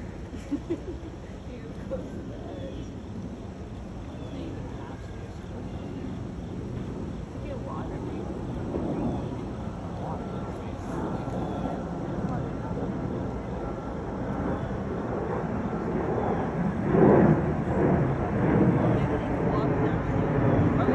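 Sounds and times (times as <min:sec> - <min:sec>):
steady low rumble: 0:00.0 - 0:20.9.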